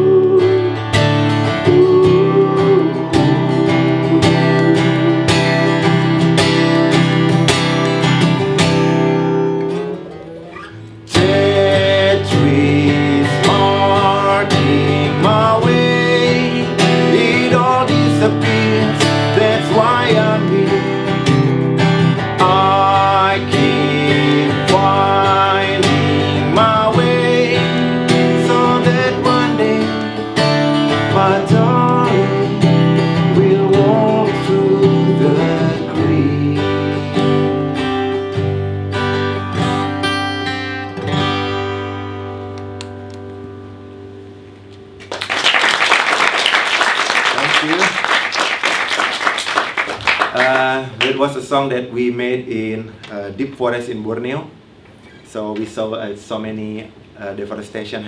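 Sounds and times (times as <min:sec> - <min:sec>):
man singing: 0:00.0 - 0:06.8, 0:11.1 - 0:21.5, 0:22.1 - 0:37.9
strummed acoustic guitar: 0:00.0 - 0:45.1.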